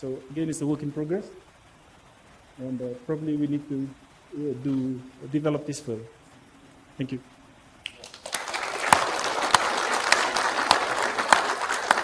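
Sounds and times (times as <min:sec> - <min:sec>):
loud single claps: 0:07.8 - 0:12.0
audience applauding: 0:07.9 - 0:12.0.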